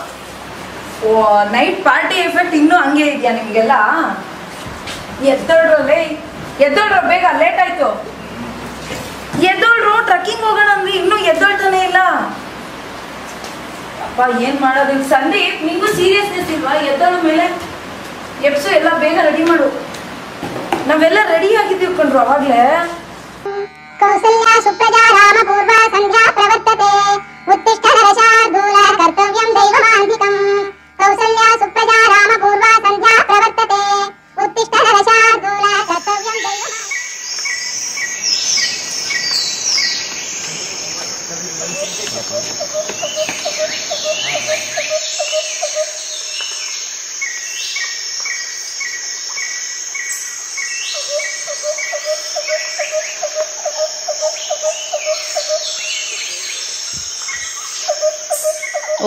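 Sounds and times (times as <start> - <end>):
insects buzzing: 0.0 - 59.0
birds chirping: 1.1 - 4.5, 5.1 - 59.0
low warbling trill: 23.5 - 46.8
quick repeated bird calls: 35.8 - 59.0.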